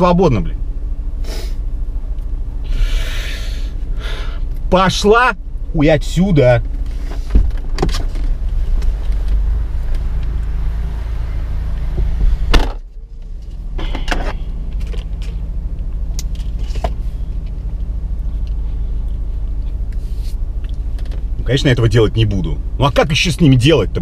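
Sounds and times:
car idling: 0:00.0 - 0:24.0
car door shutting: 0:06.7 - 0:09.4, 0:11.9 - 0:12.9, 0:13.8 - 0:15.1.

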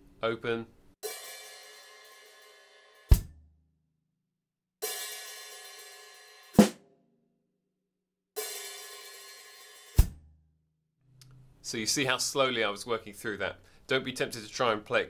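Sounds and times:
open hi-hat ringing: 0:01.0 - 0:03.1
snare drum: 0:06.6 - 0:06.8.

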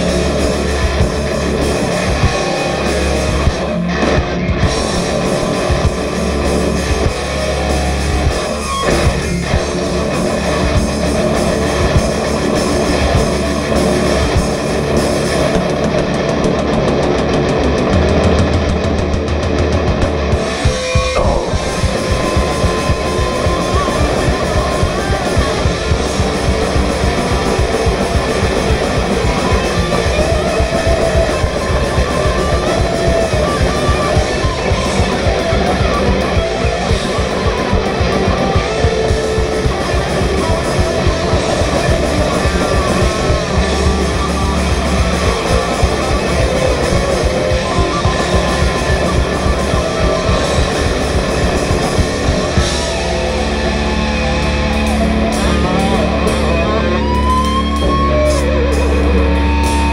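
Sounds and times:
fast drum beat: 0:00.0 - 0:56.4
bass guitar: 0:00.0 - 0:59.9
distorted electric guitars: 0:00.0 - 0:59.9.

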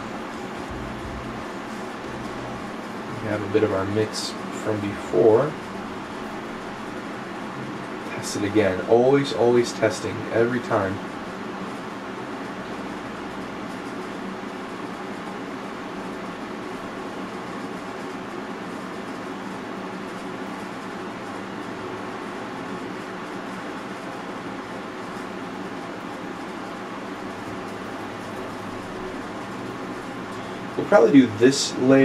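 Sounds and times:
faint low hum: 0:00.0 - 0:07.0
fan hiss: 0:00.0 - 0:32.0.

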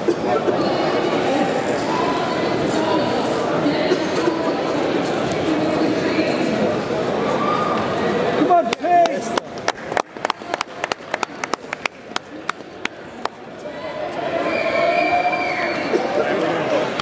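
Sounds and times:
people clapping: 0:08.5 - 0:13.5.

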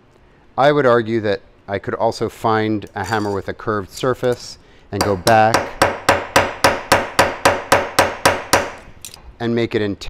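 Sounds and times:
small hammer tapping metal: 0:05.0 - 0:09.2.

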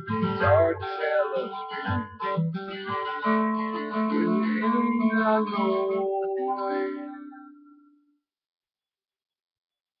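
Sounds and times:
acoustic guitar strumming: 0:00.0 - 0:08.1.

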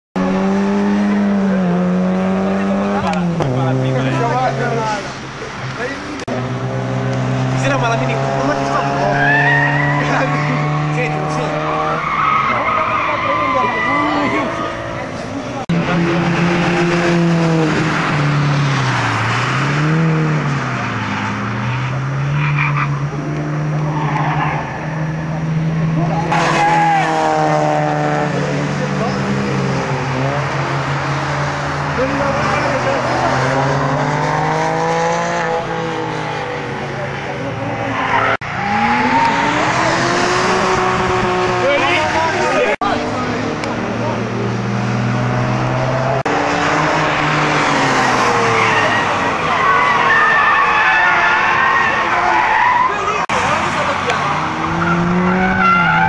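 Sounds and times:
race car engines revving: 0:00.2 - 0:56.0.

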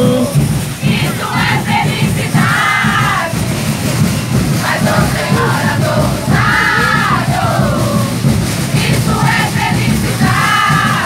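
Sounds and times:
drums beating: 0:00.0 - 0:11.0
group voices answering in song: 0:04.8 - 0:08.2.

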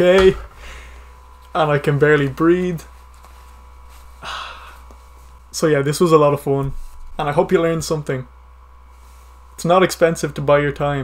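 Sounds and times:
person sighing: 0:04.2 - 0:04.9.

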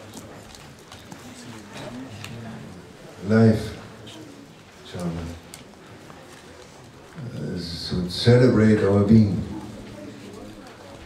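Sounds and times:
man speaking slowly: 0:03.2 - 0:04.0, 0:07.2 - 0:09.7.

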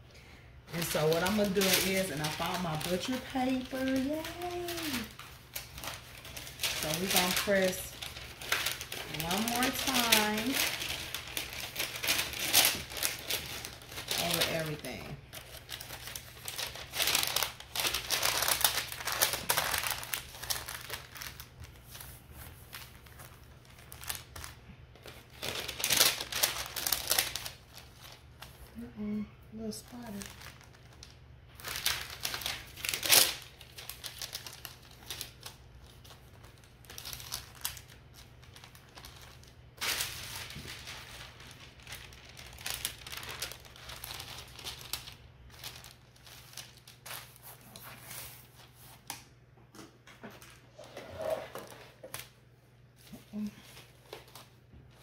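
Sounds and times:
paper crinkling and rustling: 0:00.7 - 0:28.8, 0:29.9 - 0:49.2, 0:53.0 - 0:55.0.

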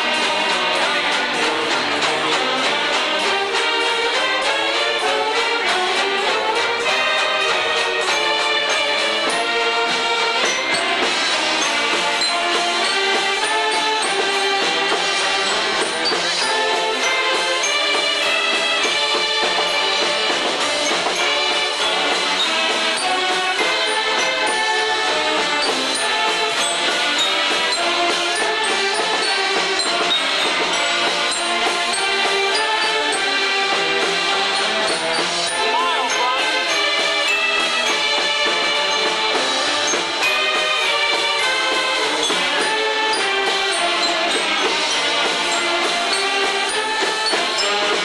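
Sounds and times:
banjos: 0:00.0 - 0:48.0
saxophones playing melody: 0:00.0 - 0:48.0.

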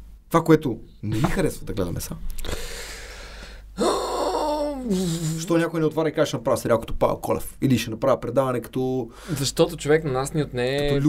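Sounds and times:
man breathing in: 0:02.4 - 0:04.1, 0:09.1 - 0:09.4
man sighing: 0:02.5 - 0:05.5.

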